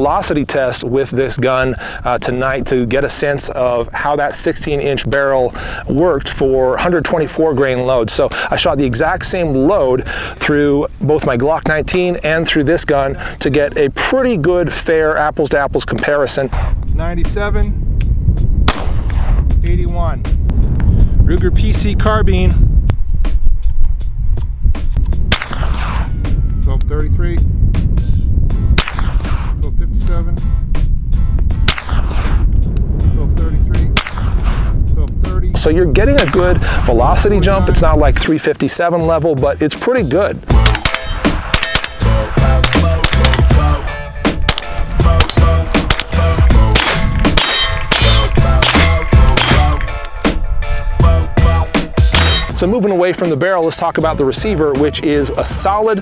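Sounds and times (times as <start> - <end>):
low throbbing rumble: 16.4 - 38.2, 40.4 - 52.8
gunshot with ringing tail: 18.6 - 19.4, 25.3 - 26.3, 28.7 - 29.6, 31.6 - 32.4, 33.9 - 34.7, 40.5 - 50.4, 52.0 - 52.6
music with steady beat: 40.5 - 55.1
steel targets clanging: 40.6 - 45.4, 46.8 - 50.4, 52.1 - 52.6.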